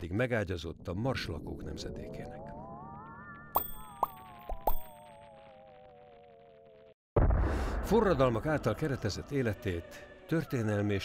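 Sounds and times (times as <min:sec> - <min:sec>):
warbling sci-fi tone: 0:01.5 - 0:06.9.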